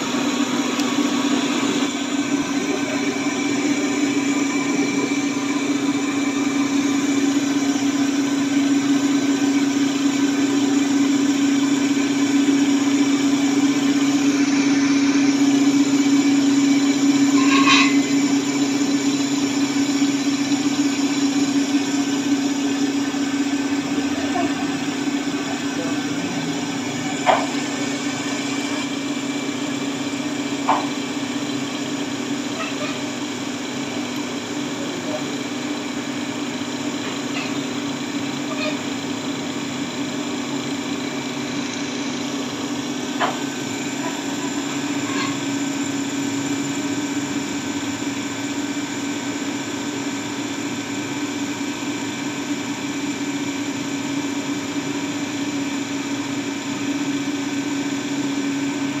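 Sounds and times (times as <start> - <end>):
milling machine humming: 0.0 - 59.0.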